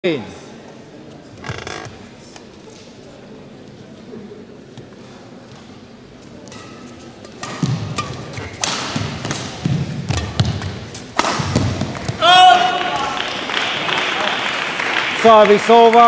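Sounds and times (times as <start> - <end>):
racket hitting shuttlecock: 6.4 - 12.3.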